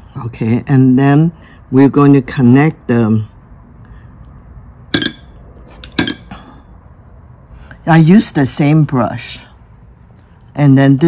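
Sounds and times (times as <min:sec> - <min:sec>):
porcelain dishes clinking: 0:04.9 - 0:06.6.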